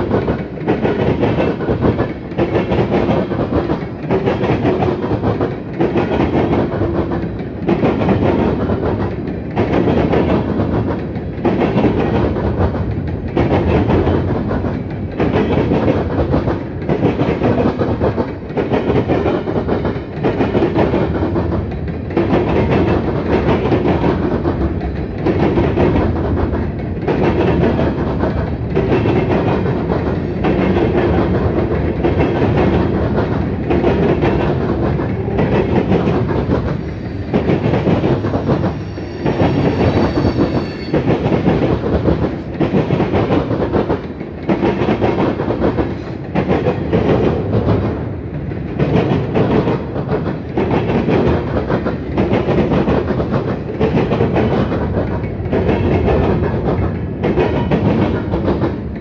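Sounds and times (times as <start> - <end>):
freight train wheels clacking: 0.0 - 59.0.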